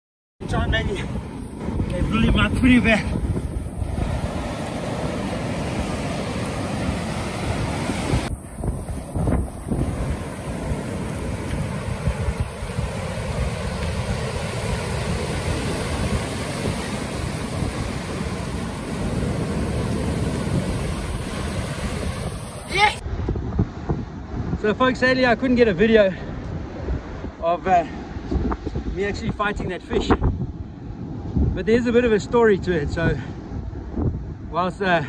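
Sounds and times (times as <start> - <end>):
ocean surf breaking: 0.4 - 23.0
wind buffeting microphone: 0.4 - 35.0.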